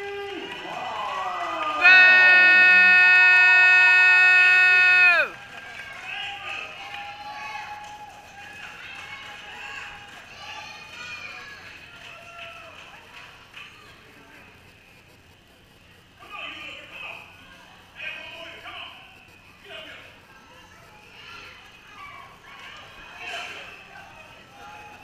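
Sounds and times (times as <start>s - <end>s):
faint crowd voices: 0.0s - 25.0s.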